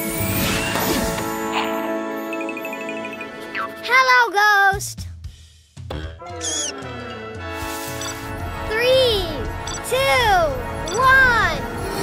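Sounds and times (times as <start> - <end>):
cartoon music: 6.1 - 11.6
short high squeak: 6.4 - 6.7.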